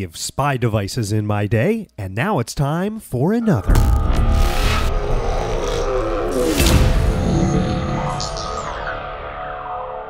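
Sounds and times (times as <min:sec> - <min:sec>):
held synth tones: 0:03.4 - 0:10.0
deep rumble: 0:03.6 - 0:10.0
whoosh: 0:03.7 - 0:10.0.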